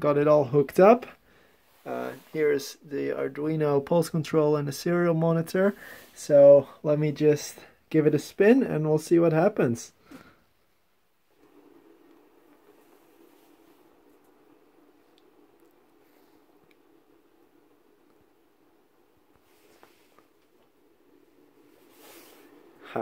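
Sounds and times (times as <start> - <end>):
faint rustle: 11.3 - 23.0.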